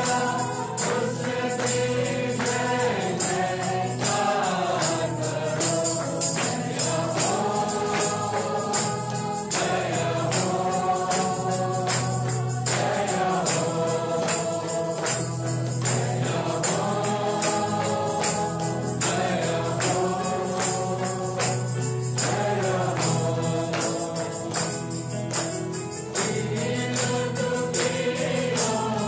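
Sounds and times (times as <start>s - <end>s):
choir singing worship song: 0.0s - 29.0s
steady percussion beat: 0.0s - 29.0s.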